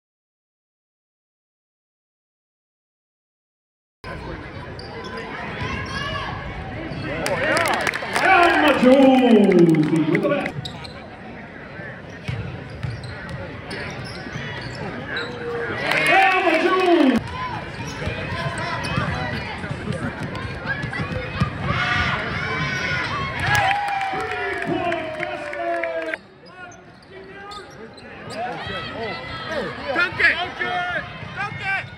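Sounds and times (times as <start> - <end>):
voices in a gym: 4.1 - 12.3, 13.0 - 31.9.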